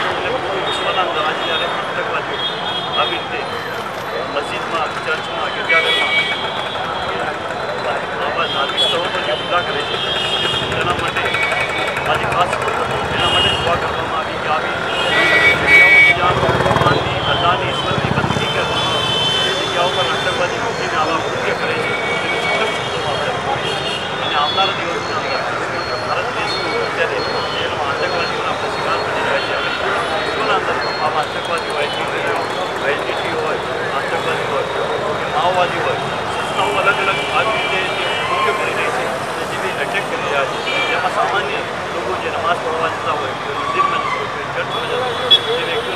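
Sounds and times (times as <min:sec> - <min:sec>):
man speaking into microphones: 0:00.0 - 0:45.9
outdoor street noise: 0:00.0 - 0:45.9.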